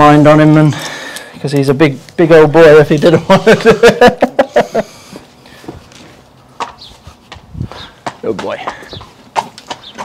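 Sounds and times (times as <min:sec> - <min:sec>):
horse and person footsteps: 0:05.0 - 0:10.0.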